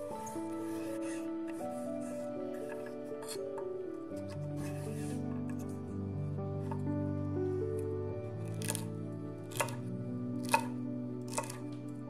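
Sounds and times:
background music: 0.0s - 12.0s
knife striking cutting board: 9.5s - 9.8s, 10.4s - 11.6s.

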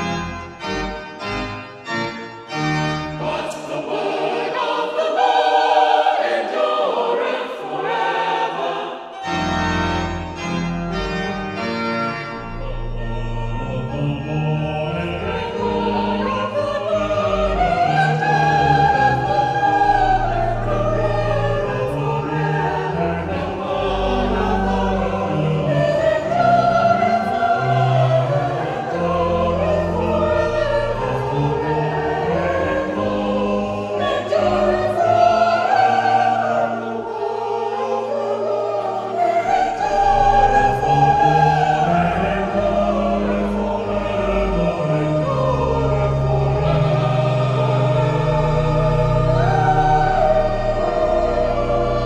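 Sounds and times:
mixed choir singing: 0.0s - 0.8s, 1.9s - 52.0s.

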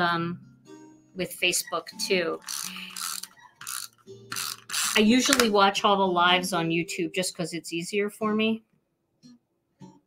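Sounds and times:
tape runner rasping zip: 2.4s - 5.5s.

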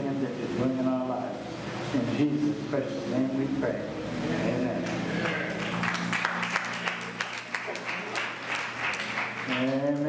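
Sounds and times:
congregation applauding: 5.1s - 10.0s.

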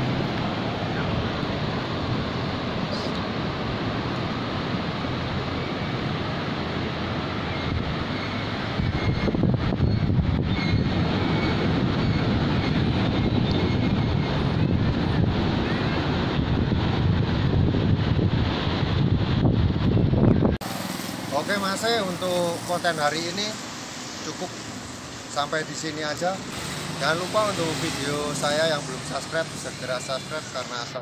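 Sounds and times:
ocean surf: 0.0s - 31.0s
wind buffeting microphone: 6.8s - 20.7s.

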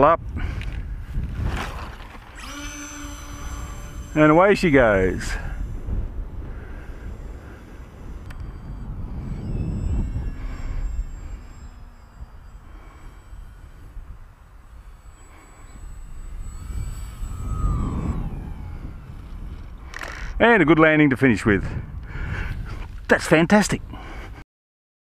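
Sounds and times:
model plane electric motor whining: 0.0s - 20.9s, 21.7s - 24.4s
wind rumble on microphone: 0.0s - 24.4s.

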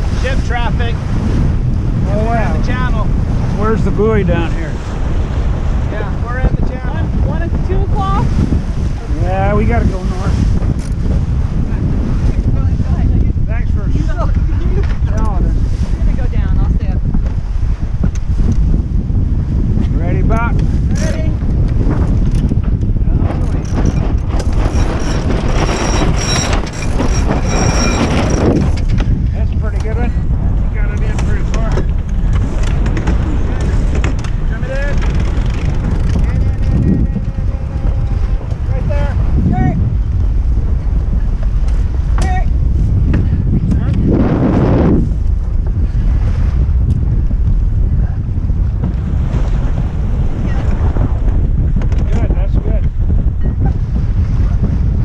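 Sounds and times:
water rushing past hull: 0.0s - 55.0s
wind buffeting microphone: 0.0s - 55.0s.

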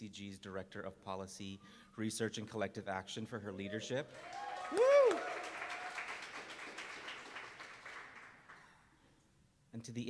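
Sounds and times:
woo cheer: 3.6s - 6.4s
audience applauding: 4.1s - 8.6s.

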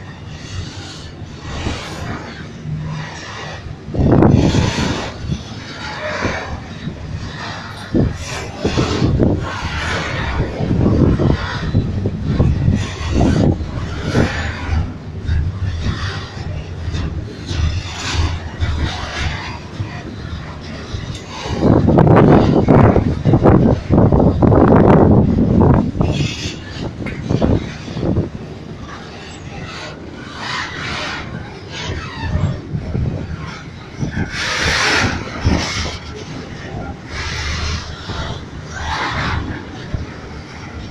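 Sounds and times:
rushing noise: 0.0s - 40.9s
train wheels rumbling on rails: 0.0s - 40.9s.

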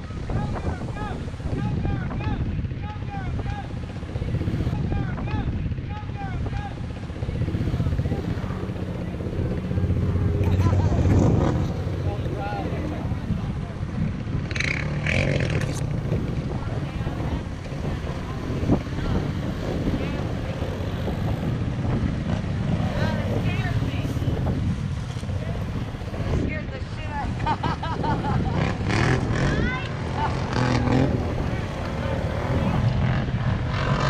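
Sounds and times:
engines running and revving: 0.0s - 34.0s
people's voices: 0.0s - 34.0s.

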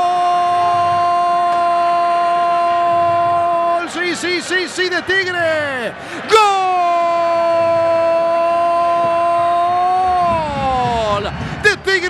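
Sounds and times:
commentator shouting goal: 0.7s - 12.0s.

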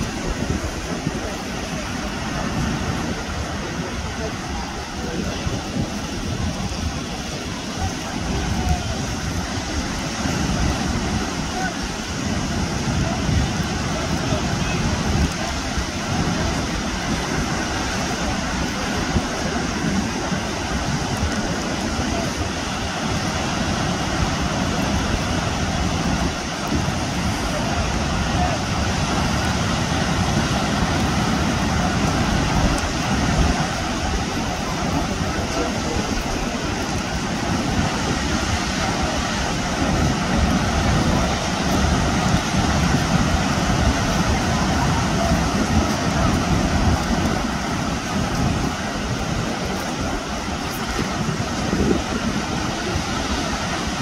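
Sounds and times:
surf breaking on shore: 0.0s - 54.0s
wind buffeting microphone: 0.0s - 54.0s.

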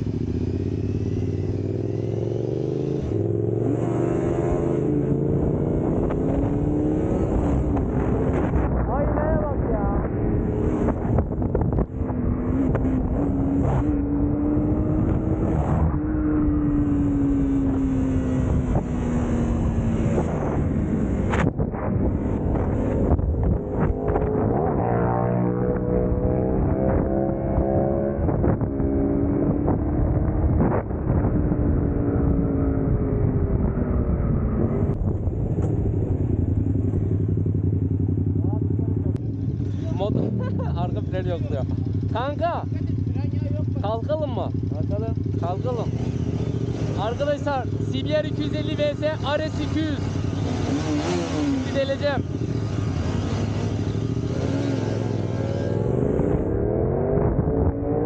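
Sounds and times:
motorcycle engine revving: 0.0s - 58.0s
wind rushing over microphone: 4.2s - 37.4s, 54.3s - 58.0s.

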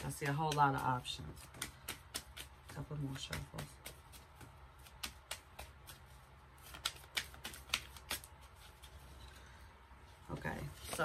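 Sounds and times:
cards being shuffled: 0.0s - 9.1s, 10.6s - 11.0s.

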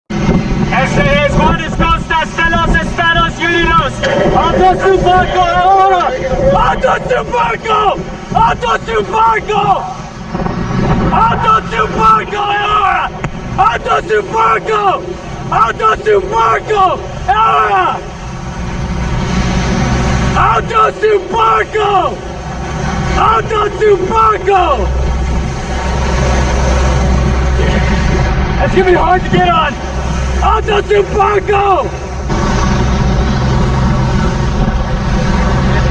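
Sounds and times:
boat engine rumbling: 0.1s - 35.9s
wind and spray rushing: 0.1s - 35.9s
man shouting: 0.8s - 10.1s, 11.1s - 18.2s, 20.3s - 22.2s, 23.2s - 25.0s, 28.6s - 29.8s, 30.4s - 32.0s.

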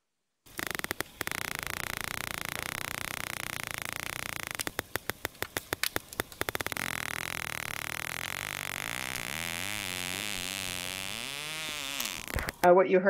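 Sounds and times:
background hiss: 0.5s - 12.7s
dolphin echolocation clicks: 0.5s - 12.7s.

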